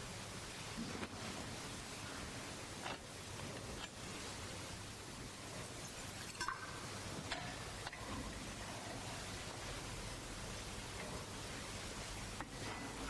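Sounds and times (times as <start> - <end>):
steady hiss: 0.0 - 13.0
altar vessels clinking: 5.6 - 9.1.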